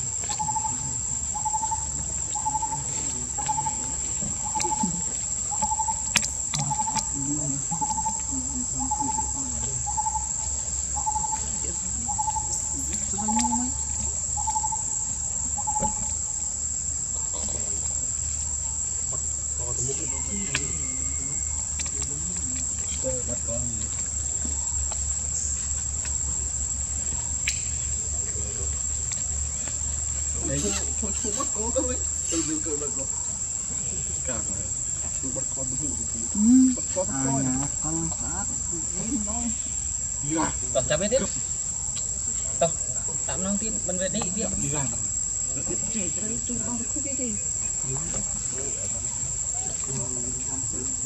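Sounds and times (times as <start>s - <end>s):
insects droning: 0.0s - 51.0s.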